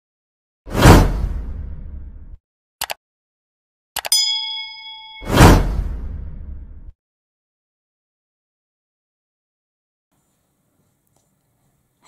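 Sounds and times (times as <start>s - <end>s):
notification bell ding: 4.0s - 5.6s
loud whoosh: 5.2s - 6.9s.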